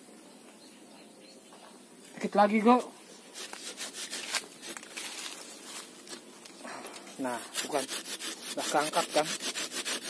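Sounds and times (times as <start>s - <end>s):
blade cutting and scraping wood: 3.3s - 5.4s, 7.2s - 10.0s.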